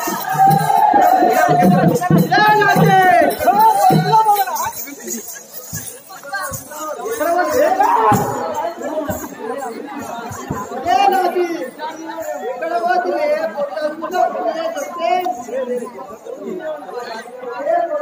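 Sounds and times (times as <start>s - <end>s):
people chattering: 0.0s - 18.0s.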